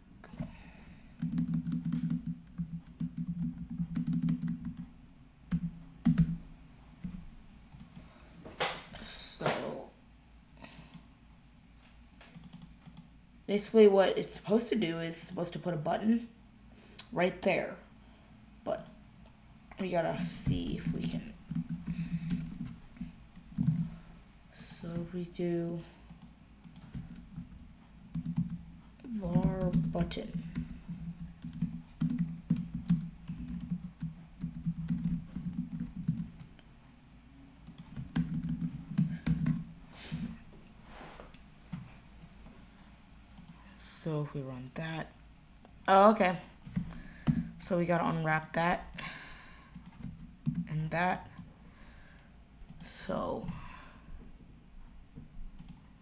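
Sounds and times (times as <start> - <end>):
computer keyboard clicking: 1.0 - 4.8, 5.5 - 6.4, 12.3 - 13.1, 20.8 - 23.9, 26.1 - 28.6, 29.4 - 36.4, 37.7 - 39.6.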